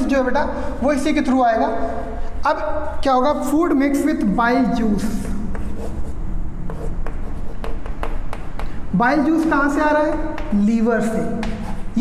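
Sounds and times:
chalk writing on chalkboard: 0:05.0 - 0:08.8, 0:11.4 - 0:12.0.

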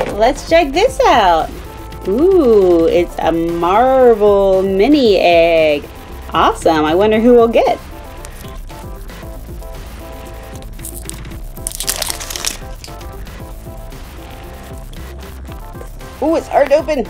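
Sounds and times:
background music: 0:00.0 - 0:17.0
wrapper crinkling: 0:10.6 - 0:13.1.

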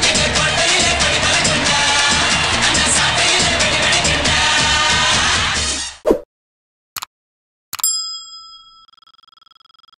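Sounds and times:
bell-like ding: 0:07.8 - 0:09.2
notification bell ringing: 0:07.8 - 0:09.9.

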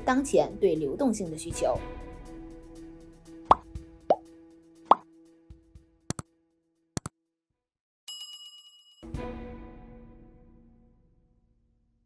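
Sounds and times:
soft background music: 0:00.0 - 0:06.3
plop sound effects: 0:03.5 - 0:04.2.

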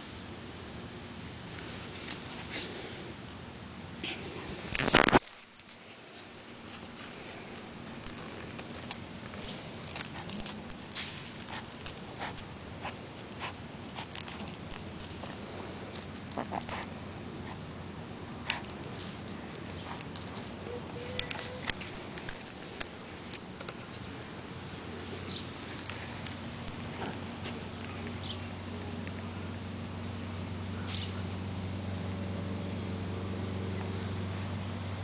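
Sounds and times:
steady hiss: 0:00.0 - 0:32.0
puppy chewing: 0:04.7 - 0:24.3, 0:25.0 - 0:29.3
puppy breathing or scuffing: 0:05.8 - 0:17.6.

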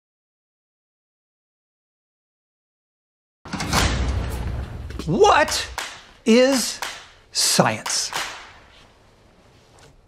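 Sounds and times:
sharp swish-slap: 0:05.3 - 0:07.2, 0:07.8 - 0:08.8.

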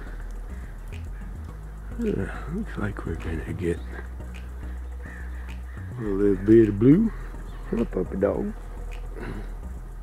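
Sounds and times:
bird calling: 0:00.0 - 0:09.6
steady low hum: 0:00.0 - 0:10.0.

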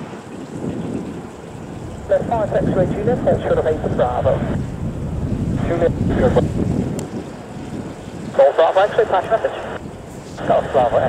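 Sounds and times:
wind rumble on microphone: 0:00.0 - 0:11.0
air traffic radio chatter: 0:02.1 - 0:04.6, 0:05.6 - 0:06.5, 0:08.3 - 0:11.0.

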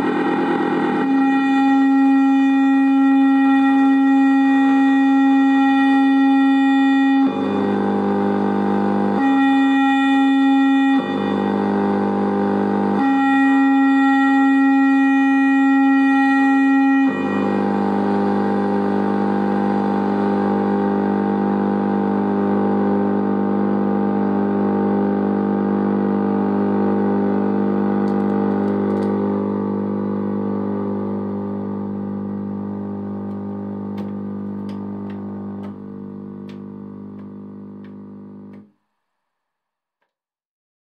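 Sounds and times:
synthesizer drone: 0:00.0 - 0:38.7.

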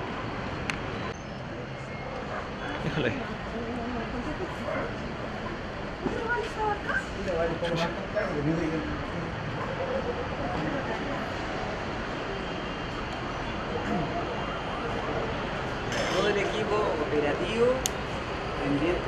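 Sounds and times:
low street rumble: 0:00.0 - 0:19.0
people talking and calling out: 0:01.1 - 0:19.0.

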